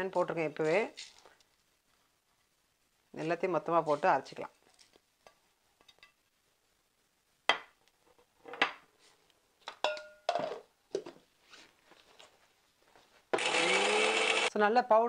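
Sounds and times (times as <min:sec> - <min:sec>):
mixer grinder motor running: 0:13.4 - 0:14.5.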